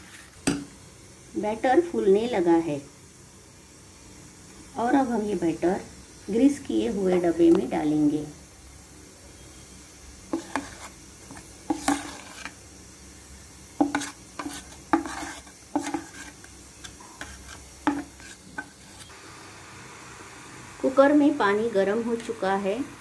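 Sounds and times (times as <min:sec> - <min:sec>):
spatula scraping a bowl: 0:10.3 - 0:12.6, 0:13.8 - 0:19.1.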